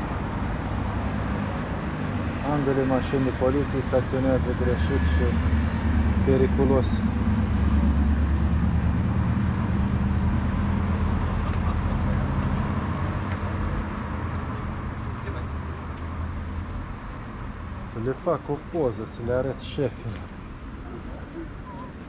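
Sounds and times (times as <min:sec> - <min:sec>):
city street noise: 0:00.0 - 0:22.0
vehicle engine humming: 0:00.0 - 0:22.0.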